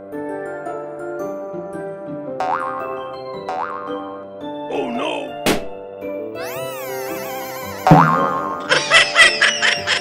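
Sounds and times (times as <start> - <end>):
cheerful children's music: 0.0 - 10.0
cartoon boing sound effect: 7.6 - 8.7.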